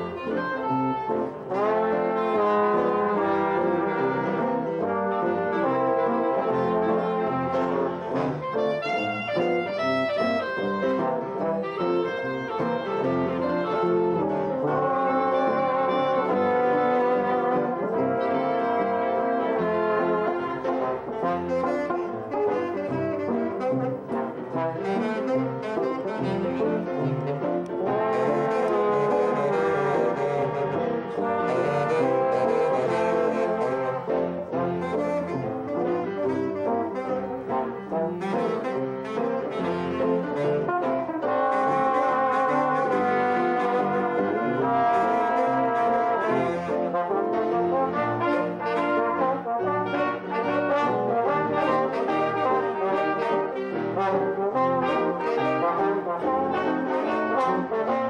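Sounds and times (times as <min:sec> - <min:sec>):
small jazz band playing: 0:00.0 - 0:58.0.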